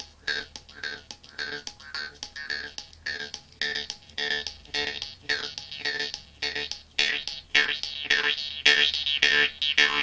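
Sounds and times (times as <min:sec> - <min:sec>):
jaw harp plucking: 0:00.0 - 0:10.0.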